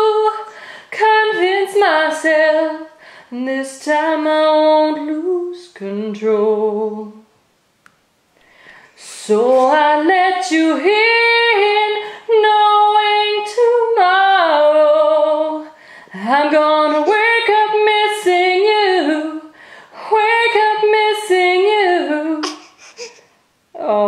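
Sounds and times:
woman singing a slow ballad: 0:00.0 - 0:07.3, 0:09.0 - 0:22.5.

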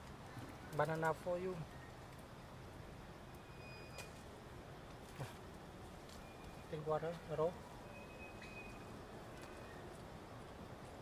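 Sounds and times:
outdoor background noise: 0:00.0 - 0:11.0
thin high whistle: 0:03.4 - 0:04.2, 0:07.8 - 0:09.8.

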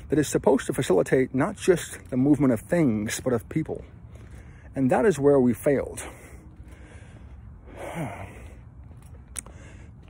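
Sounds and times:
man breathing in: 0:06.2 - 0:08.8, 0:09.4 - 0:10.0.

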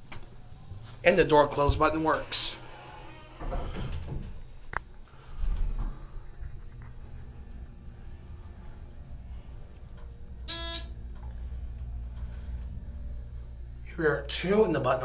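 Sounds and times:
elevator hum: 0:00.0 - 0:15.0
short buzzy electronic beep: 0:10.5 - 0:10.9.

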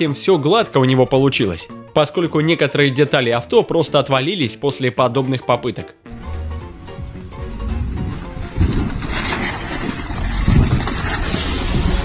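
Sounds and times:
car engine rumble: 0:06.2 - 0:12.0
wind buffeting microphone: 0:07.0 - 0:12.0.

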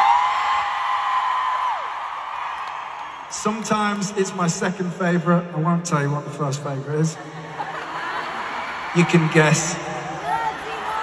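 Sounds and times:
crowd screaming and cheering: 0:00.0 - 0:04.9, 0:07.2 - 0:11.0.

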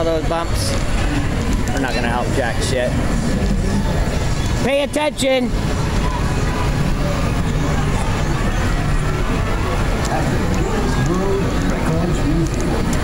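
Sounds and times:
faint voices: 0:00.0 - 0:13.0
wheelchair rolling on sidewalk: 0:00.0 - 0:13.0.

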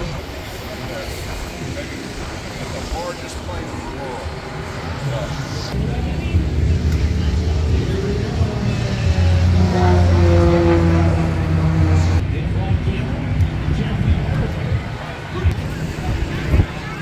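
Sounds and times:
crowd voices: 0:00.0 - 0:17.0
low engine drone: 0:00.0 - 0:17.0.

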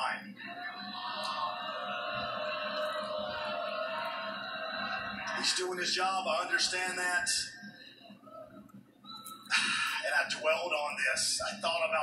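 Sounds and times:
held television tone: 0:00.0 - 0:12.0.

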